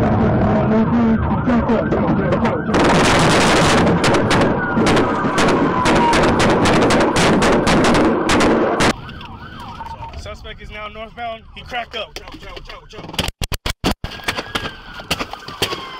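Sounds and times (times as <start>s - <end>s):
police siren wailing: 0.0s - 13.1s, 14.1s - 15.9s
rapid gunshots: 2.7s - 9.0s.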